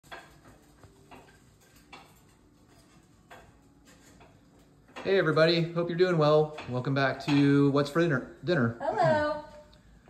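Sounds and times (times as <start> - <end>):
dishes and utensils clinking: 0.0 - 8.0.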